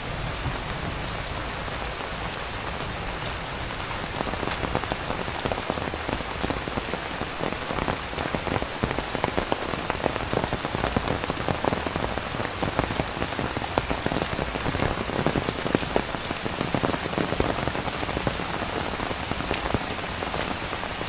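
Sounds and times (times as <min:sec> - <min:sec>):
heavy rain falling: 0:00.0 - 0:21.0.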